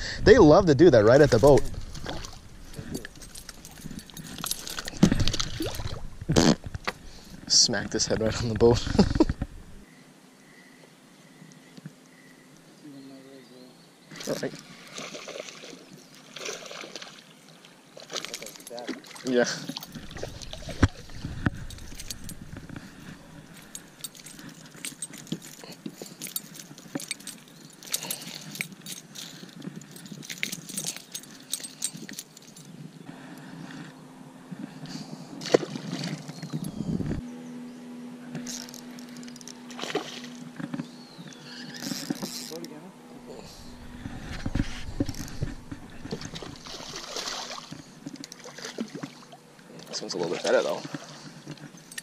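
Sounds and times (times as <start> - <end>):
steady low hum: 0.0 - 13.0, 19.6 - 50.0
fishing gear clicks and knocks: 1.3 - 9.6, 18.2 - 33.0, 35.4 - 37.2, 38.4 - 42.8, 43.4 - 49.1, 49.8 - 52.0.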